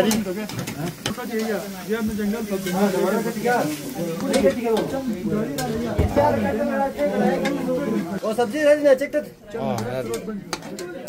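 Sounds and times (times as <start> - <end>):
onions sizzling in oil: 0.0 - 9.0
voices talking: 0.0 - 11.0.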